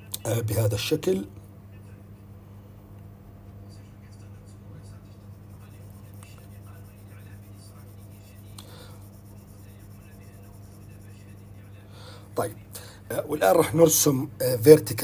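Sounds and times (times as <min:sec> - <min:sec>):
steady low hum: 0:00.0 - 0:15.0
stylus tapping and scratching on screen: 0:04.2 - 0:11.8.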